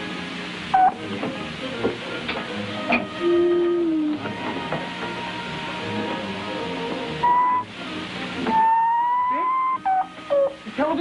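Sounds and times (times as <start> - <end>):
comedy whistle tones: 3.2 - 4.2, 7.2 - 7.7, 8.5 - 10.6.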